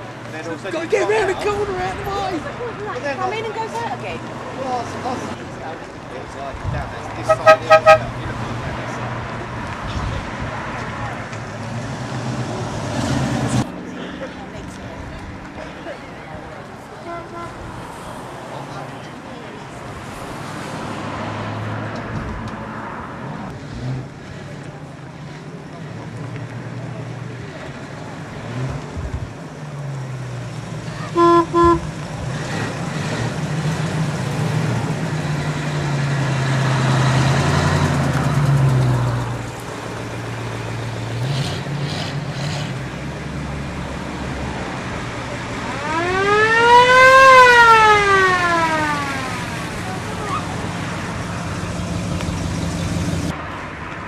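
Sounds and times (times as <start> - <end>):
cars driving past: 0.0 - 54.0
car horn toots: 7.2 - 8.1, 17.0 - 17.6, 31.2 - 31.9
siren-like wail: 45.7 - 49.6.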